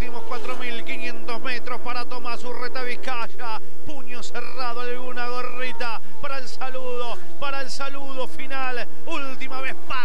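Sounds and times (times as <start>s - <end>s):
man giving fast race commentary: 0.0s - 10.0s
racing car engines droning: 0.0s - 10.0s.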